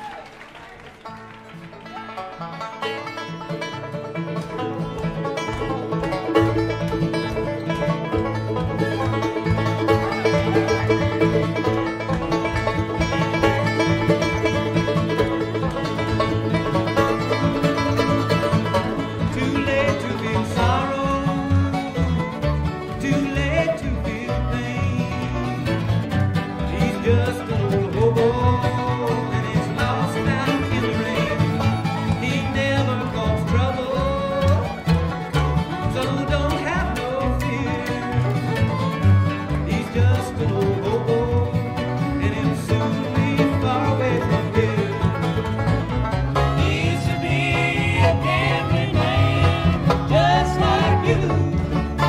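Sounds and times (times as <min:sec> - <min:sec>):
bluegrass banjo and guitar music: 0:01.0 - 0:52.0.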